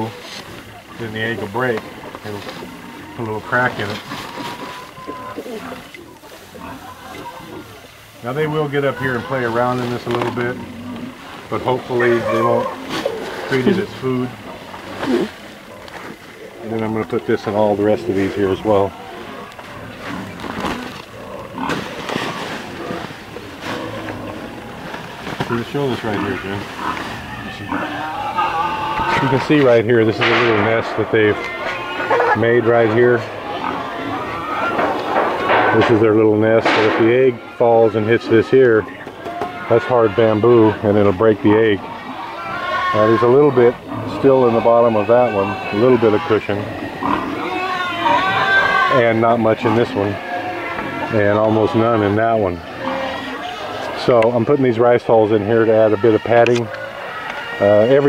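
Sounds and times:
rice hulls pouring and rustling: 0.0s - 34.7s
chicken calling: 0.0s - 54.0s.

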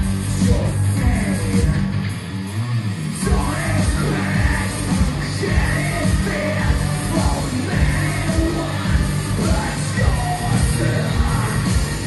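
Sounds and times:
drums with steady kick: 0.0s - 12.0s
electric guitar: 0.0s - 12.0s
keyboards: 0.0s - 12.0s
person singing into microphone: 3.2s - 12.0s.

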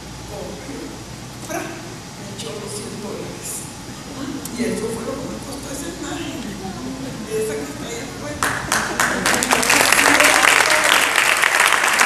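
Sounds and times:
indistinct speech in a hall: 0.0s - 12.0s.

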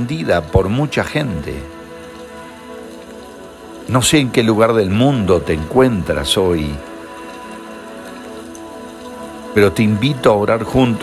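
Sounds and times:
soft music of sustained chords: 0.0s - 11.0s.

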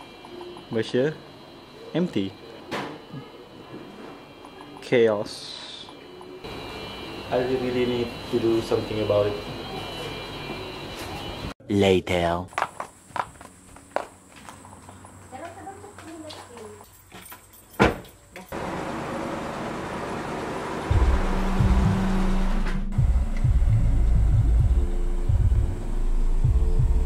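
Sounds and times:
car engine running: 18.6s - 27.0s.

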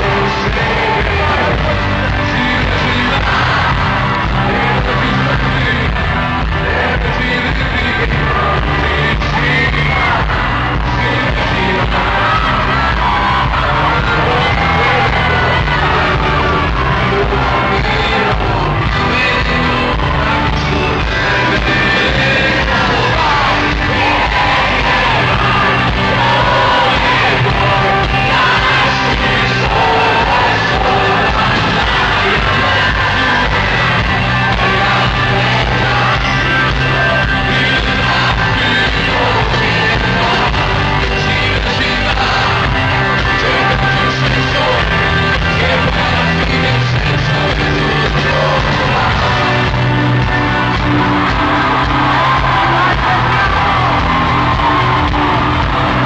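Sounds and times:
crowd yelling: 0.0s - 56.0s
man singing: 0.0s - 56.0s
rock band playing live: 0.0s - 56.0s.

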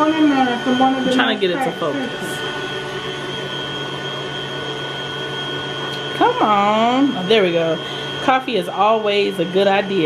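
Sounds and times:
appliance motor hum: 0.0s - 10.0s
high whine: 0.0s - 10.0s.

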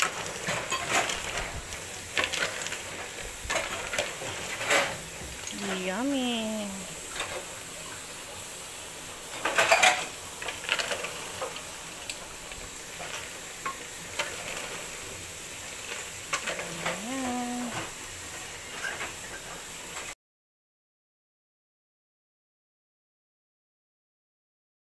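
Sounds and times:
coconut milk simmering and bubbling: 0.0s - 5.6s, 6.7s - 19.4s
ladle and shells clinking on pot: 9.4s - 10.1s.

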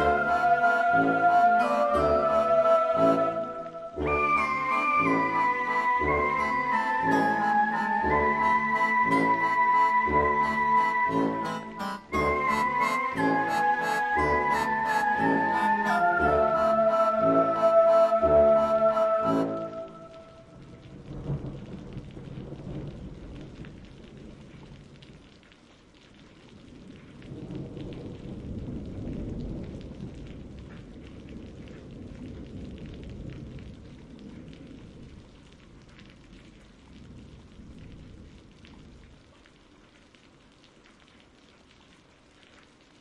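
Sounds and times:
rain falling: 0.0s - 43.0s
rolling thunder: 20.4s - 25.0s, 26.7s - 39.0s.

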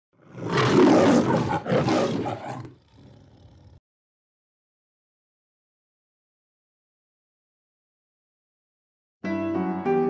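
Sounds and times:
lion roaring: 0.2s - 3.8s.

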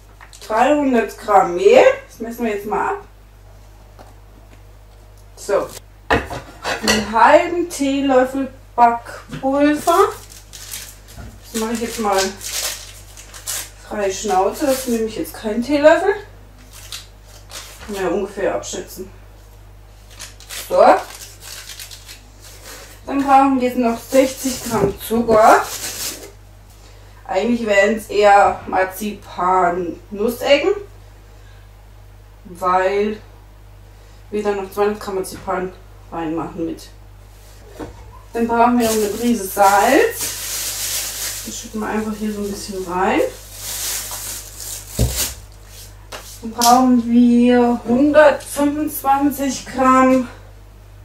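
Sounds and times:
rustling of packaging: 9.7s - 15.1s, 16.6s - 18.0s, 20.0s - 23.0s, 24.0s - 26.3s, 38.6s - 46.4s.

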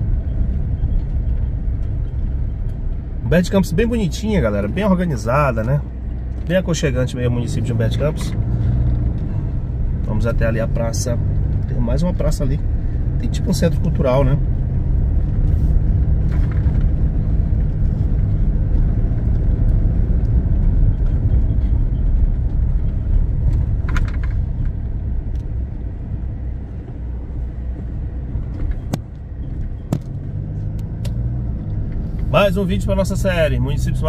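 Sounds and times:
car engine and tyre rumble: 0.0s - 34.0s.

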